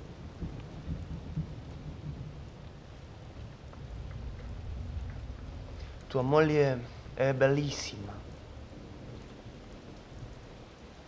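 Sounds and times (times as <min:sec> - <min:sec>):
steady rain: 0:00.0 - 0:11.0
thunder rumbling: 0:00.0 - 0:11.0.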